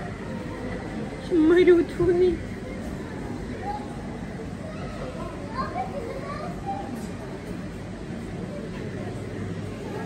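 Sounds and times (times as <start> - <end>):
children's voices: 0.0 - 7.6
crowd babble: 0.0 - 10.0.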